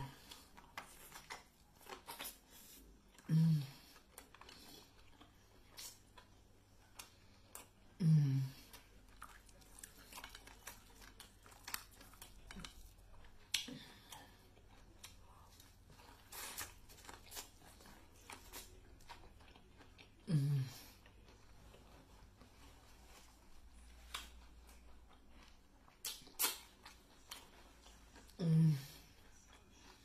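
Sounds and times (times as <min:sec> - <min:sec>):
chewing and wet mouth smacks: 0:00.2 - 0:03.3, 0:08.7 - 0:20.2, 0:21.0 - 0:28.4
person humming: 0:08.0 - 0:08.6, 0:28.4 - 0:29.0.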